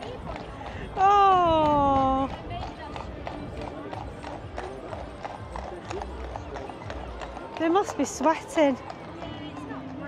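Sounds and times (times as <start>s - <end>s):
horse hooves clip-clopping: 0.0s - 10.0s
murmur of voices: 0.0s - 10.0s.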